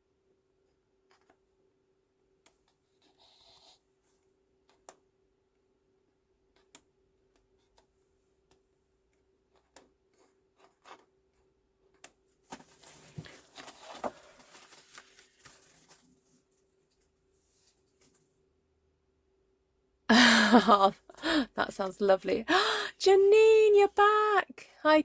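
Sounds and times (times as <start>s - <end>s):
paper rustling and sliding: 12.5s - 18.2s.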